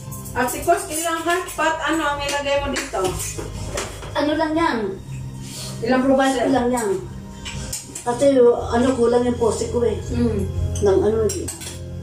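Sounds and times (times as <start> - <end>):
background music: 0.0 - 12.0
cutlery clinking on plates: 11.3 - 11.8.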